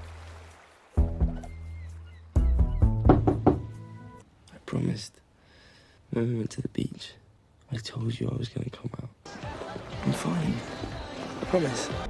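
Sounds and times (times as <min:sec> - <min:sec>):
music: 0:00.0 - 0:04.2, 0:09.3 - 0:12.0.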